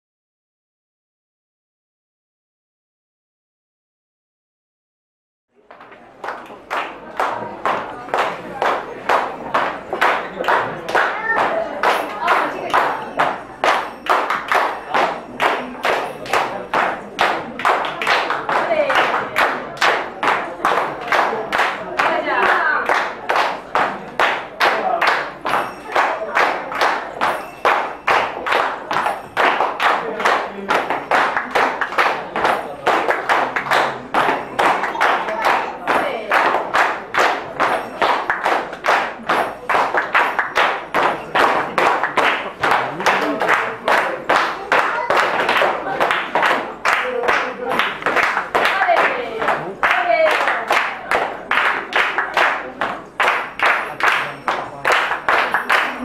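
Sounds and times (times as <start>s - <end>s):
people clapping in rhythm: 5.6s - 56.0s.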